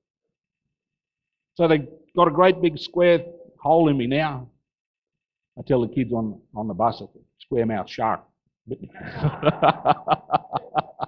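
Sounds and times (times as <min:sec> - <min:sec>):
man laughing: 0:08.7 - 0:11.0.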